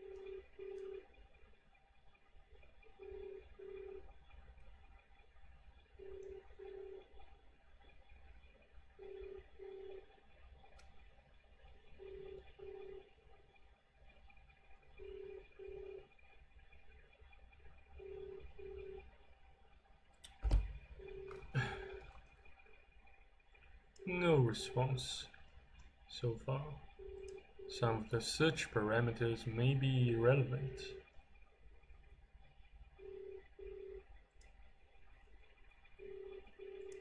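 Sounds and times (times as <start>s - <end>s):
telephone ringback tone: 0.0s - 1.0s, 3.0s - 4.1s, 6.0s - 7.1s, 9.0s - 10.1s, 12.0s - 13.0s, 15.0s - 16.1s, 18.0s - 19.0s, 33.0s - 34.1s, 36.0s - 37.0s.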